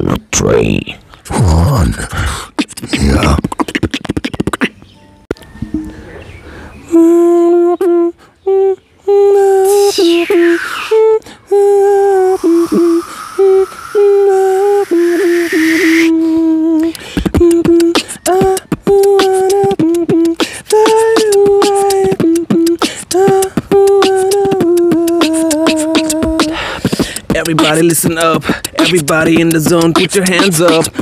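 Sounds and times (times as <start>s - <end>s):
beatboxing hummed melody: 1.3s - 4.8s, 6.9s - 31.0s
beatbox percussive clicks and kicks: 2.4s - 4.8s, 16.8s - 31.0s
swept vocal effect: 9.4s - 17.0s.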